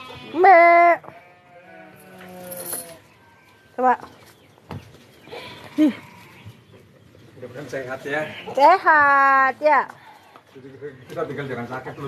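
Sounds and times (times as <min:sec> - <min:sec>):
cow mooing: 0:01.2 - 0:03.1.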